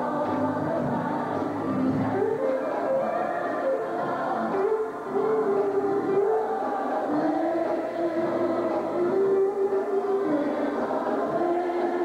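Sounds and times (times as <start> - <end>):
gospel church music: 0.0 - 12.0.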